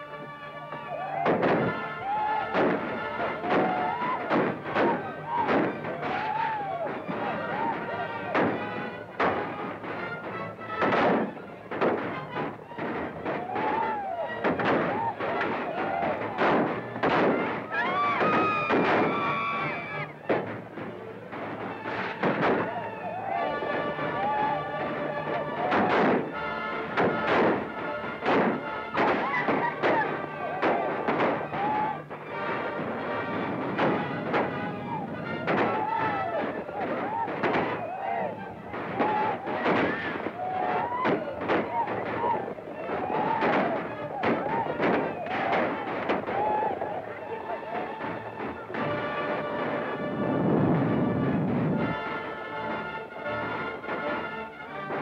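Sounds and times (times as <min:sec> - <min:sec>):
dramatic music: 0:00.0 - 0:55.0
people yelling: 0:00.0 - 0:55.0
gunshots: 0:00.9 - 0:47.0.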